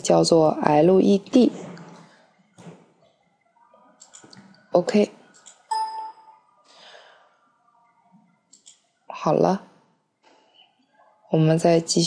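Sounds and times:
computer mouse clicks: 4.0s - 4.5s, 5.3s - 5.7s, 8.5s - 8.8s.

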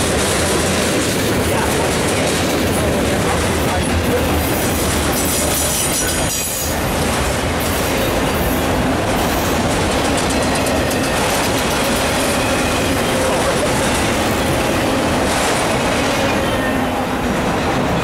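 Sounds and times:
freight train wheels rumbling: 0.0s - 18.0s.

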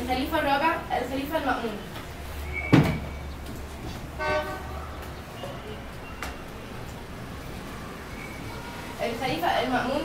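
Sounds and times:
horn toot: 4.2s - 4.8s.

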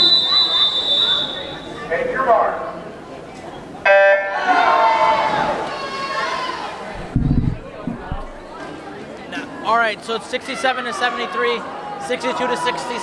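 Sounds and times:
long whistle blast: 0.0s - 1.8s
voices: 0.0s - 9.6s.

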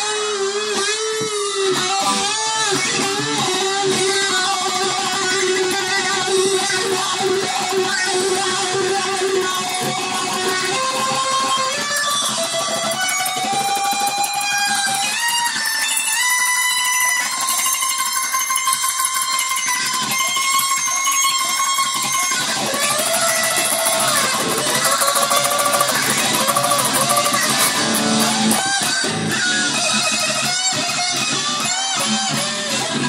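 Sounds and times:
electric guitar strummed: 0.0s - 33.0s.

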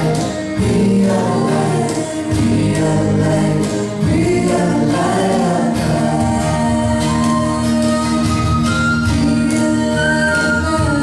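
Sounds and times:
acoustic guitars: 0.0s - 11.0s
cajon beat: 0.0s - 11.0s
voices singing held notes: 0.0s - 11.0s.

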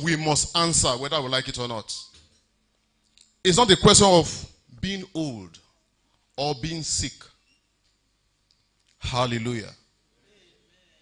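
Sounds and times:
man speaking into a microphone: 0.0s - 2.2s, 3.4s - 5.6s, 6.4s - 7.4s, 9.0s - 9.8s.

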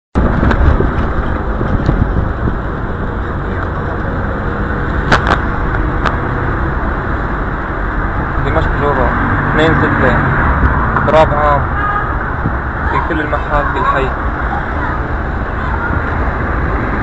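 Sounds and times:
low traffic rumble: 0.1s - 17.0s.

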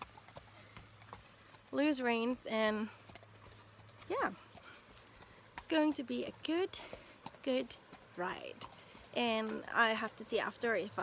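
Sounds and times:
horse hooves clip-clopping: 0.0s - 11.0s.

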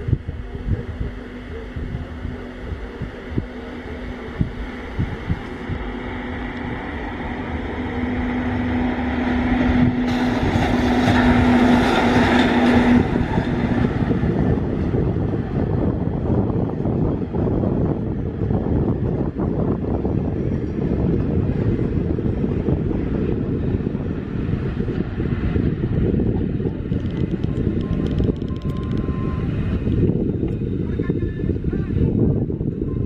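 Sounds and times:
electric train passing: 0.0s - 33.0s
wind buffeting microphone: 0.0s - 33.0s.

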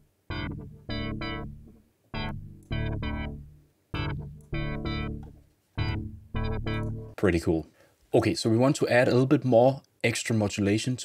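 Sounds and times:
synth chord stabs with wobbly filter: 0.0s - 7.2s.

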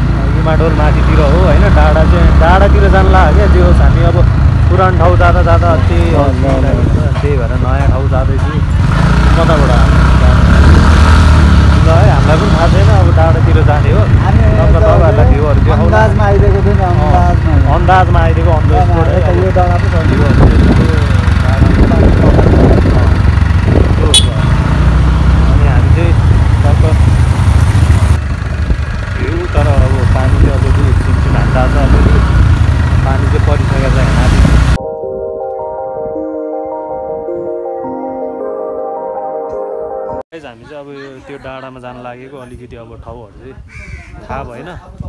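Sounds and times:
vehicle engine and road noise: 0.0s - 34.8s.

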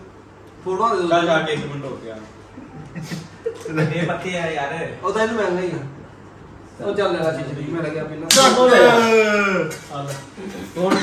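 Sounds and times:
sharp slap: 8.3s - 8.6s
man shouting: 8.3s - 9.8s.

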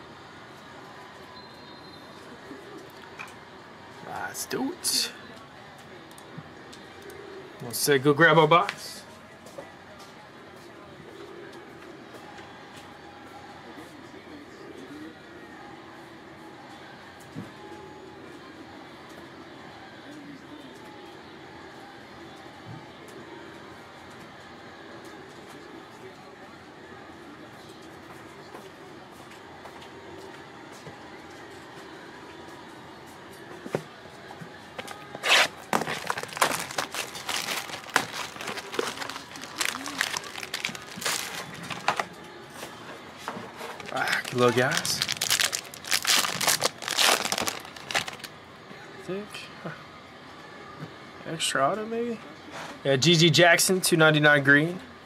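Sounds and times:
card packaging crinkling: 35.2s - 42.1s, 43.6s - 48.3s.

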